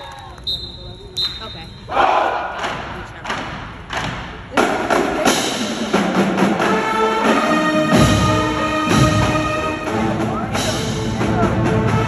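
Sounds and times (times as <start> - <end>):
crowd noise: 0.0 - 12.0
drumline hits echoing: 0.6 - 12.0.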